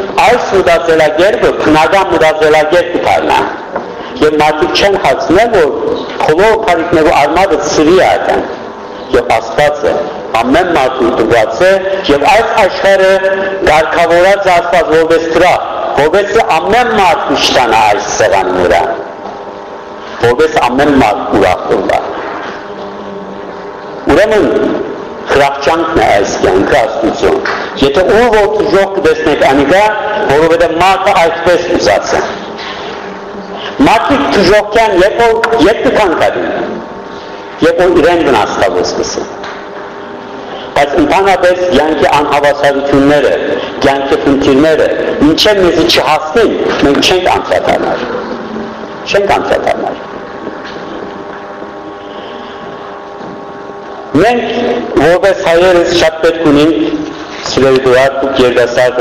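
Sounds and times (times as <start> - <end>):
man speaking: 0.0 - 19.2, 20.1 - 22.5, 24.0 - 32.6, 33.4 - 39.4, 40.5 - 50.1, 54.1 - 59.0
low background hum: 0.0 - 59.0.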